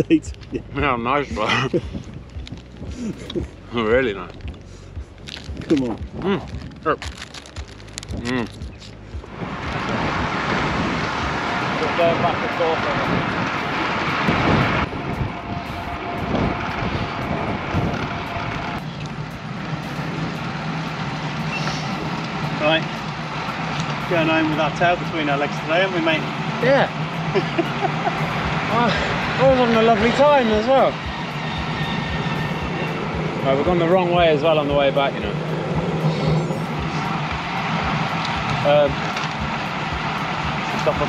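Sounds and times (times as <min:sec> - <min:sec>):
road noise: 0:00.0 - 0:41.0
person laughing: 0:01.3 - 0:02.1, 0:02.9 - 0:03.6, 0:27.3 - 0:29.3
wind rushing over microphone: 0:08.0 - 0:23.4.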